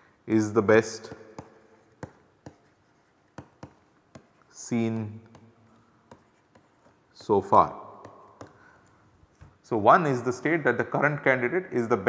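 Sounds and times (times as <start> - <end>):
pen writing: 1.4 - 4.5, 6.1 - 7.4.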